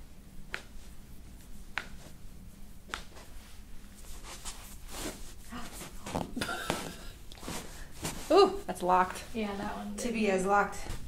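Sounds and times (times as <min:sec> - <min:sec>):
soft rustling: 0:00.0 - 0:11.0
person laughing breathily: 0:06.4 - 0:07.2.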